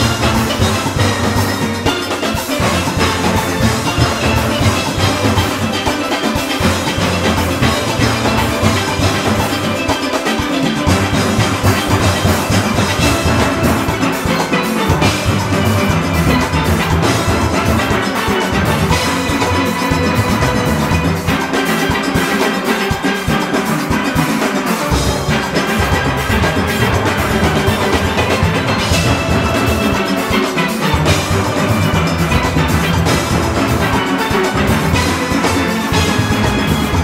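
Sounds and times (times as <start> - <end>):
drum-kit and conga rhythm: 0.0 - 37.0
steelpans playing melody: 0.0 - 37.0.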